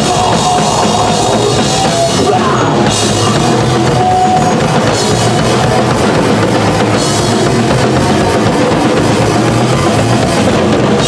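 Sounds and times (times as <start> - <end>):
drum kit pounding: 0.0 - 11.0
thrash metal band playing: 0.0 - 11.0.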